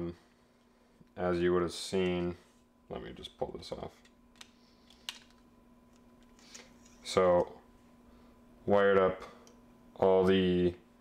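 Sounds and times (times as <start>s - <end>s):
faint steady hum: 0.0s - 11.0s
faint handling noises: 3.7s - 8.0s.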